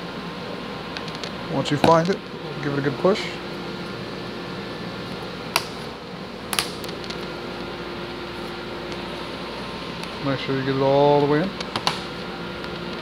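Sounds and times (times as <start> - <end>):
steady background hum: 0.0 - 13.0.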